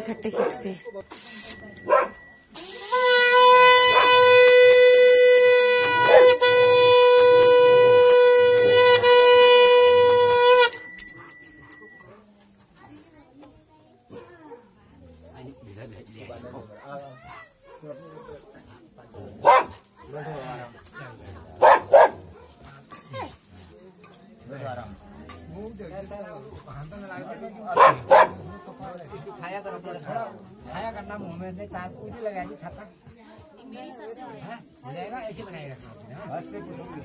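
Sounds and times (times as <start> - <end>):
small bell ringing: 0.0 - 13.1
conch shell blown: 2.6 - 11.0.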